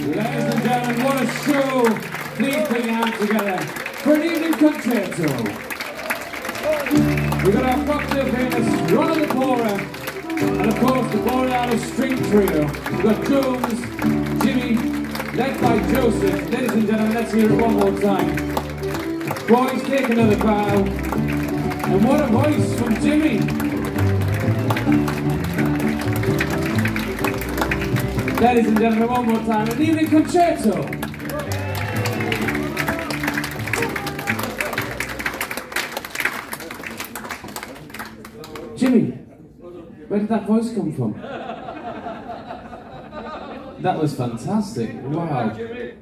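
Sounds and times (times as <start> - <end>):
acoustic ensemble music: 0.0 - 37.6
applause: 0.0 - 39.2.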